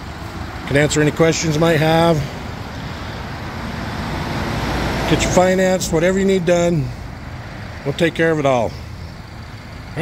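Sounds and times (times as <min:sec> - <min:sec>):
low rumble of vehicle noise: 0:00.0 - 0:10.0.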